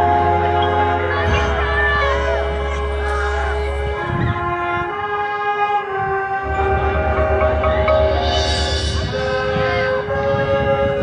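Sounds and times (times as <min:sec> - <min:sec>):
marching band sustained chord: 0:00.0 - 0:11.0.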